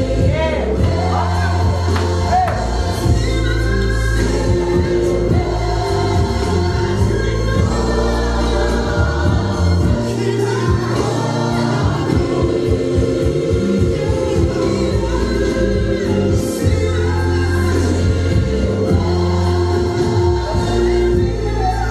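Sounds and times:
choir singing gospel: 0.0 - 21.9
sustained bass line: 0.0 - 21.9.

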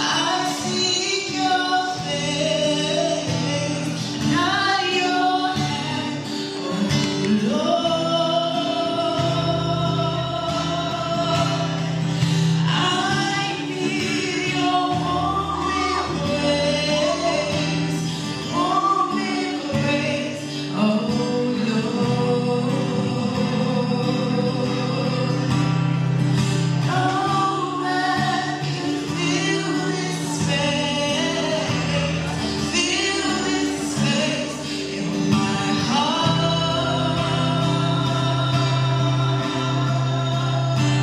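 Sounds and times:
woman singing slow song: 0.0 - 41.0.

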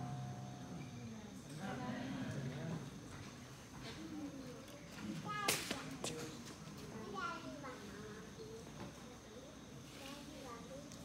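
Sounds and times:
chatter of people in a hall: 0.0 - 11.0.

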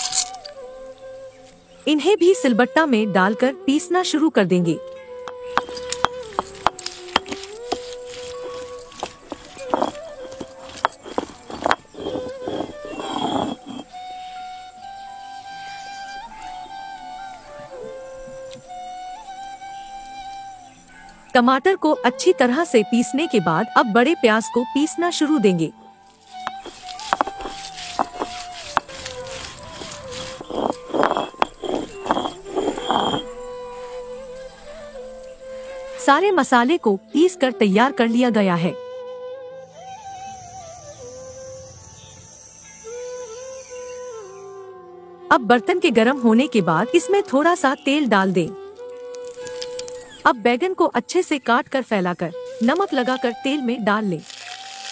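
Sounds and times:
flute music: 0.0 - 54.9
stone roller grinding on slab: 5.5 - 14.0, 26.3 - 33.3, 54.2 - 54.9.

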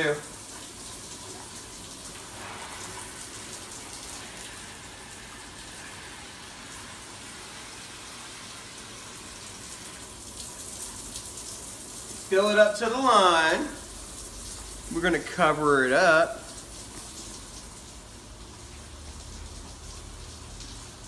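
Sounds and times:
shower running: 0.0 - 21.0
water filling a bowl: 0.0 - 21.0.

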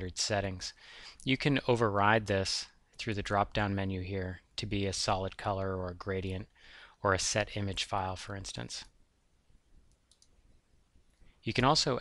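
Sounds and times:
faint computer mouse clicks: 9.8 - 10.6.

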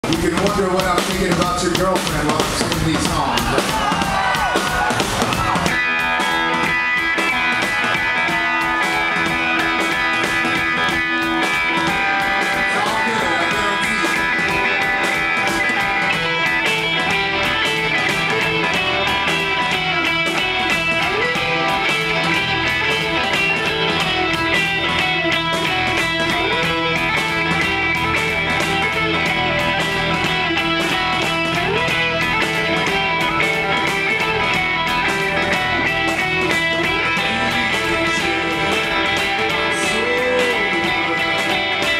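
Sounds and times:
live rock band playing: 0.0 - 41.9
electric guitars ringing chords: 4.4 - 41.9.

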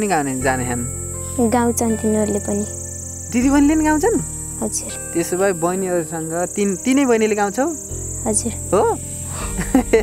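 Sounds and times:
high insect drone: 0.0 - 10.0.

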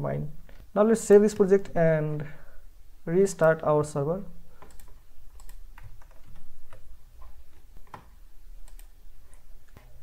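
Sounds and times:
computer keyboard keystrokes: 4.6 - 10.0.

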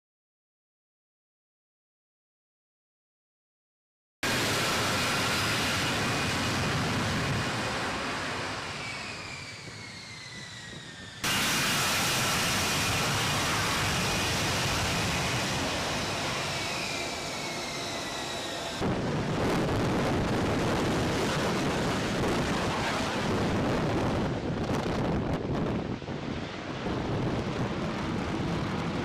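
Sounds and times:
jet engine high whine: 4.2 - 29.0.

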